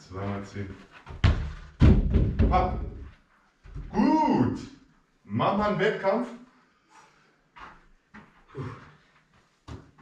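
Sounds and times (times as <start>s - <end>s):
goal rattling and knocking: 1.1s - 3.0s.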